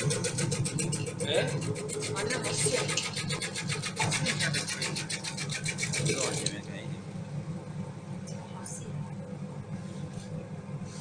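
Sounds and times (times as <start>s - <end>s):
steady motor hum: 0.0s - 11.0s.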